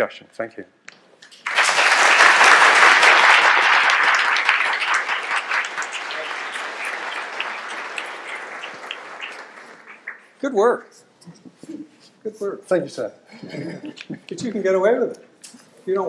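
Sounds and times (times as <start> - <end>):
audience applauding: 1.3 - 10.4.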